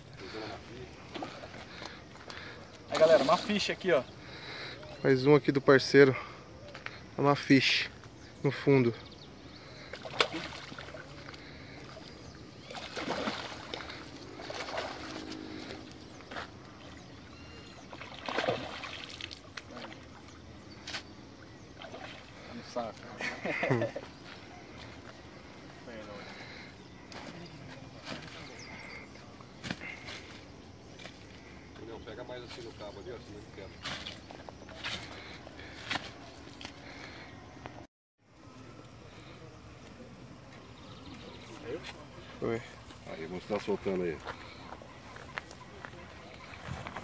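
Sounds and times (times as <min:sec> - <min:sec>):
water sloshing and splashing: 0:00.9 - 0:03.8, 0:09.7 - 0:20.4, 0:21.7 - 0:23.0.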